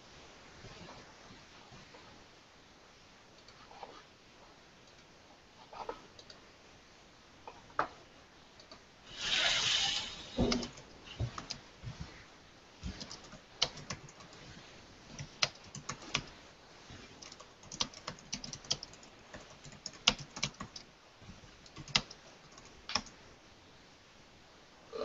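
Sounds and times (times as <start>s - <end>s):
typing on computer keyboard: 12.9s - 14.4s, 15.1s - 16.3s, 17.1s - 20.9s, 21.6s - 23.2s.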